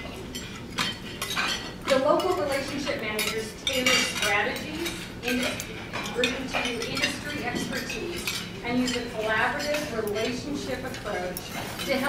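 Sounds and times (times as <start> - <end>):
glassware and cutlery clinking: 0.0 - 12.0.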